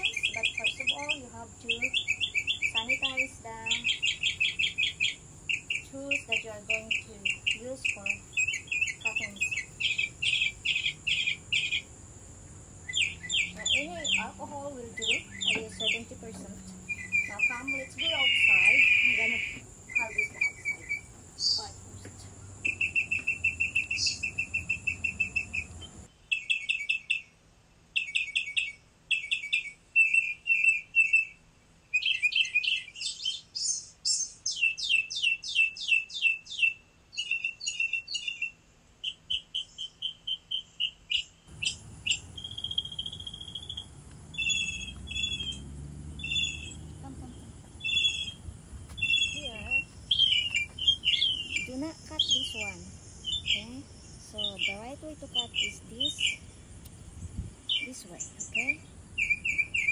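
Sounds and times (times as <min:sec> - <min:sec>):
songbirds chirping: 0:00.0 - 0:59.9.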